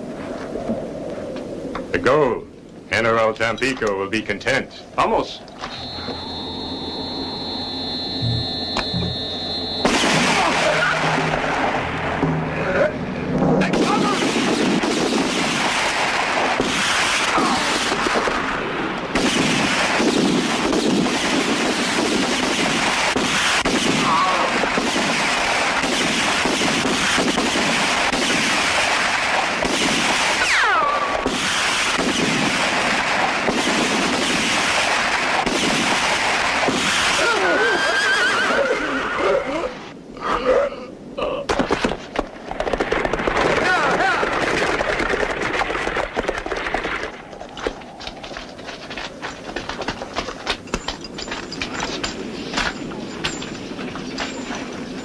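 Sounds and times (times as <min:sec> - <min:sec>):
dense gunfire: 0:09.8 - 0:12.2, 0:13.6 - 0:37.4, 0:42.5 - 0:47.1
horses whinnying: 0:37.2 - 0:41.4.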